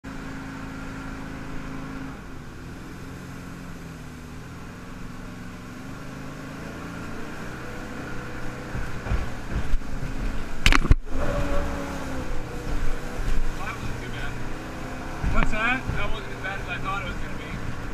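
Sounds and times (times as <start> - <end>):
boat engine running: 0.0 - 17.9
hull thumping on whitewater: 6.9 - 17.9.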